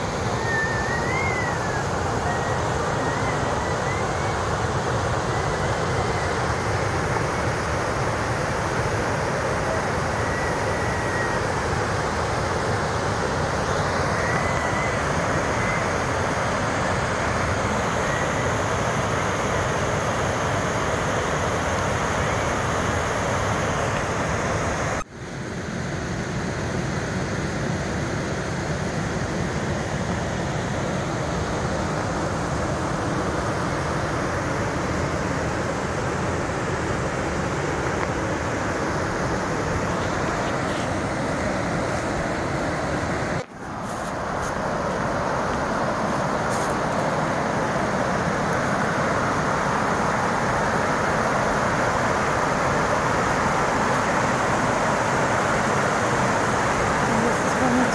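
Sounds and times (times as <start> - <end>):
waterfall rushing: 0.0 - 25.1, 26.3 - 57.9.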